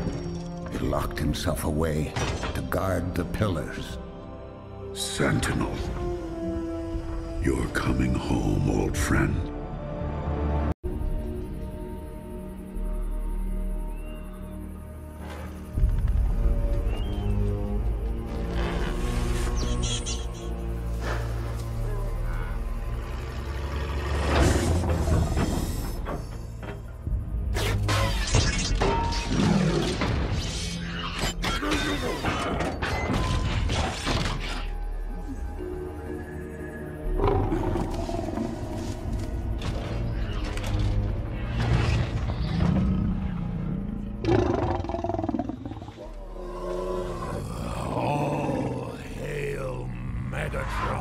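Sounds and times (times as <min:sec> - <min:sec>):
dark film score: 0:00.0 - 0:51.0
creature roar and wavering calls: 0:42.6 - 0:51.0.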